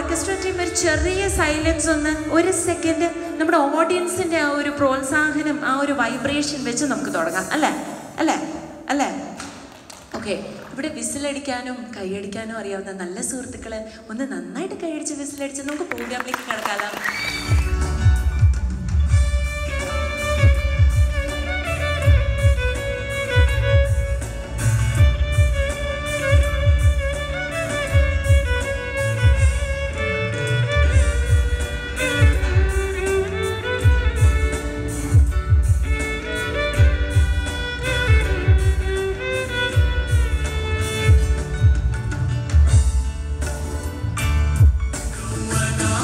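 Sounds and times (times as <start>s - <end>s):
live band playing: 0.0s - 8.2s, 16.0s - 46.0s
violin melody: 17.4s - 43.4s.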